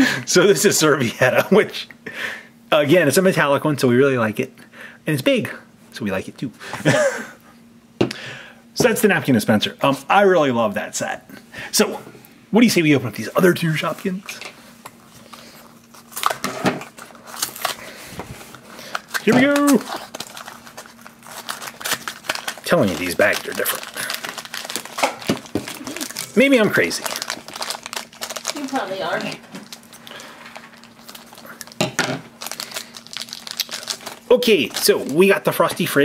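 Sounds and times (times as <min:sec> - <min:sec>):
plastic bag crinkling: 0:15.2 - 0:35.8
plastic packaging crackles and clicks: 0:15.8 - 0:17.8, 0:18.9 - 0:31.8, 0:32.4 - 0:35.3.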